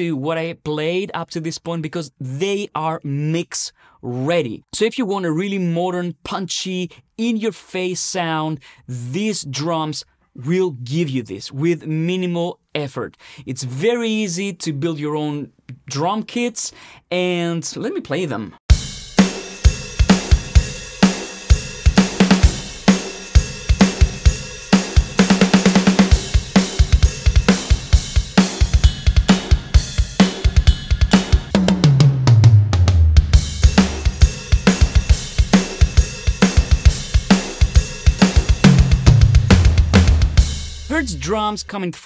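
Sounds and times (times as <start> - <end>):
drum roll: 18.7 - 41.6
rock drum kit groove: 18.7 - 41.7
tom fills: 18.7 - 41.7.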